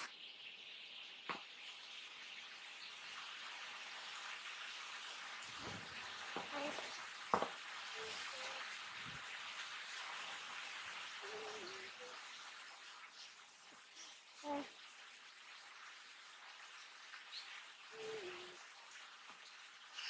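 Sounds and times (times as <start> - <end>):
faint steady hiss: 0.0 - 20.0.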